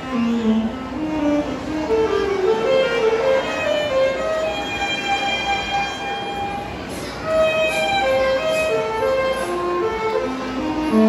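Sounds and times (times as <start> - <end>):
alto saxophone solo: 0.0 - 11.0
concert band accompaniment: 0.0 - 11.0.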